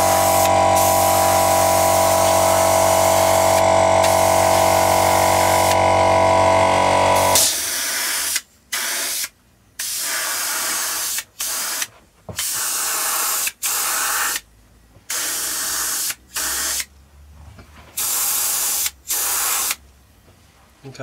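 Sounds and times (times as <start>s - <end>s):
paint spraying hisses: 0.0s - 5.8s, 18.0s - 19.8s
steady hum: 0.0s - 7.5s.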